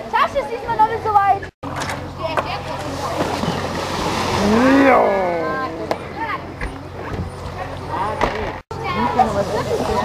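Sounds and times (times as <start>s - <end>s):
water noise: 0.0s - 10.0s
wind: 0.0s - 10.0s.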